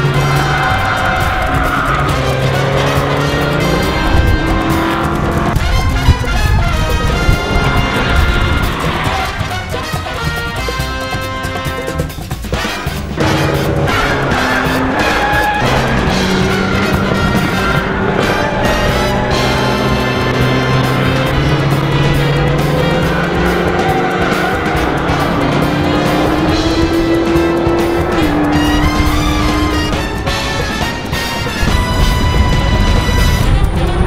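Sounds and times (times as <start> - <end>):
instrumental soundtrack music: 0.0 - 34.0
race car engine running hard: 0.0 - 34.0.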